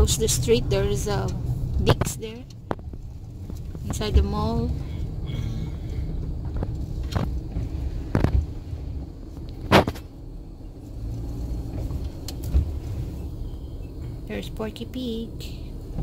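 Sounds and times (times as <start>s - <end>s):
engine and road rumble: 0.0s - 16.0s
sharp knocks and rattles: 1.3s - 4.8s.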